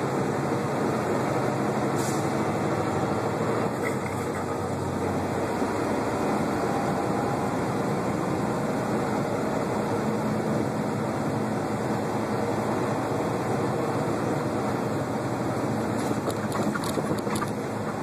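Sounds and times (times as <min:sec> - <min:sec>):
truck engine drone: 0:00.0 - 0:18.0
tyre-on-road noise: 0:00.0 - 0:18.0.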